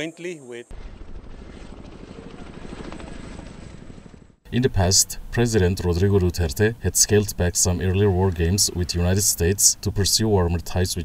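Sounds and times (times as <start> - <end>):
helicopter rotors beating: 0.0 - 11.0
helicopter engine noise: 0.7 - 10.6.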